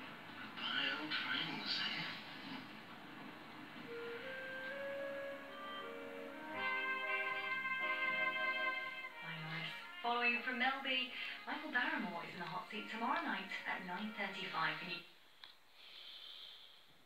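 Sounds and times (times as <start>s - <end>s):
speech on television: 0.0s - 3.4s, 9.2s - 15.1s
slow sustained closing music: 3.6s - 10.0s.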